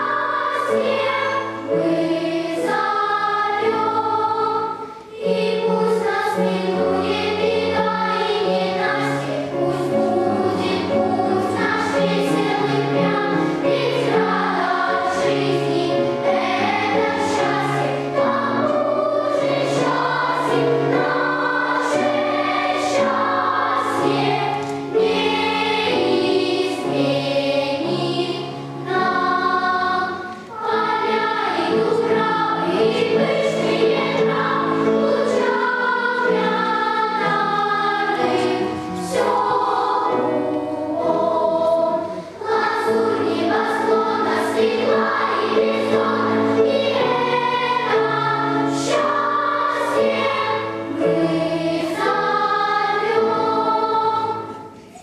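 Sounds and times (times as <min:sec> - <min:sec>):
children's choir singing: 0:00.0 - 0:55.0.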